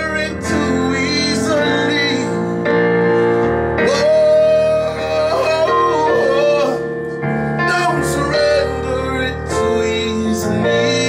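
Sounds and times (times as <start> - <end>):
live song with held chords: 0.0 - 11.0.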